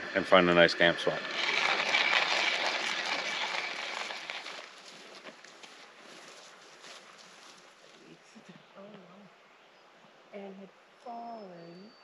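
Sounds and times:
hand coffee grinder grinding: 0.3 - 6.2.

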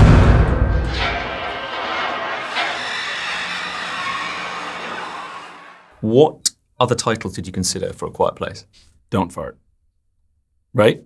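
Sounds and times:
deep boom: 0.0 - 2.7
tense music drone: 0.0 - 6.0.

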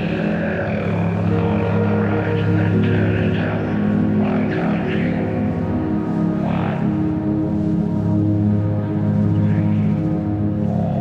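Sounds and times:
droning electric guitars and bass: 0.0 - 11.0.

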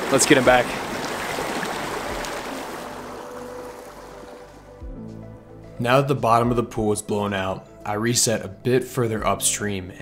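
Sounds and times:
stream running water: 0.0 - 4.8.

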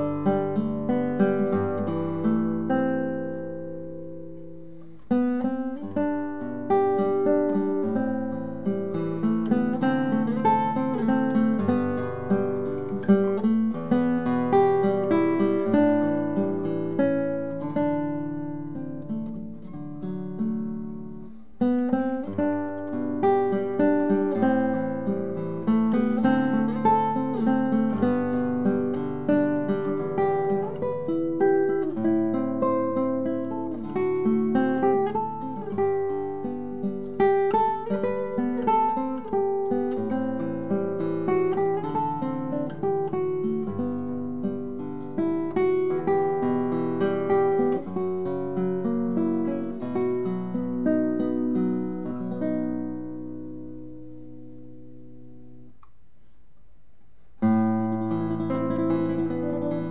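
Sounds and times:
classical guitar fingerpicked: 0.0 - 59.9.

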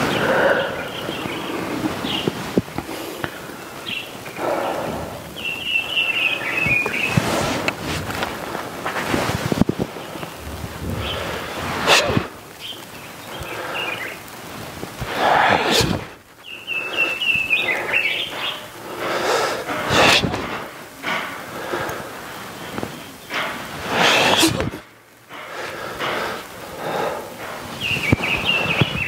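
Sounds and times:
bird chirping: 0.0 - 2.4, 3.2 - 7.5, 9.8 - 14.3, 16.4 - 19.2, 26.9 - 29.0
person exhaling forcefully: 10.8 - 12.4, 15.0 - 16.2, 18.9 - 22.2, 23.8 - 24.9.

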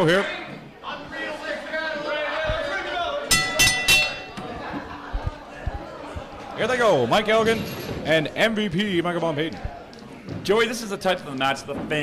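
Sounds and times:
ring bell strikes: 3.3 - 4.4.

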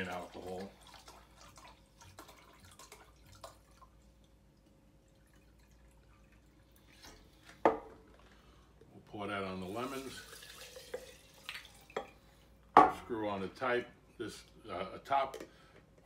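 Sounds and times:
liquid trickling into glass: 9.8 - 12.3.

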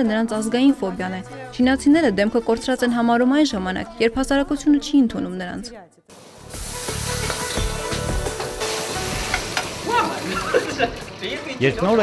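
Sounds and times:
food sizzling in a wok: 6.1 - 11.4.

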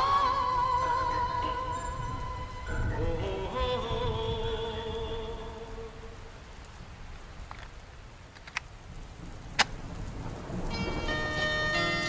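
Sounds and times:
background hiss: 0.0 - 12.0
sharp clicks: 7.4 - 8.7, 9.5 - 9.8
chiming keyboard notes: 10.7 - 12.0.

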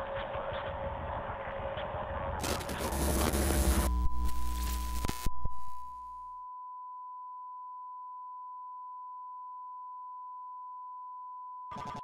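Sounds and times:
burst of static: 2.4 - 6.2
electronic test tone: 2.4 - 7.9.

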